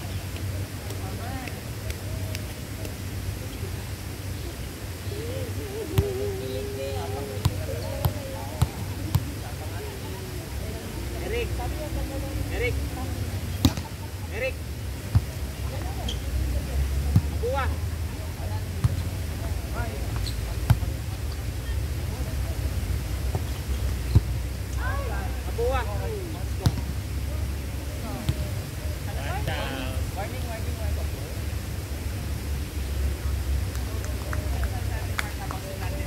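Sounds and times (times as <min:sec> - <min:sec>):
players calling out: 0:05.0 - 0:12.8.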